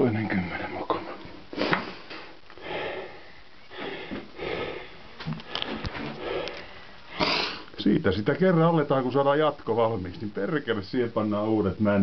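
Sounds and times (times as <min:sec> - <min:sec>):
person sniffing and breathing: 0:01.5 - 0:07.7.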